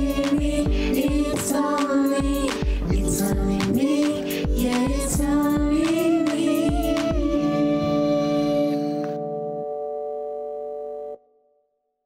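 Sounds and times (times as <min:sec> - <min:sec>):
keyboard chord held: 0:07.4 - 0:11.3.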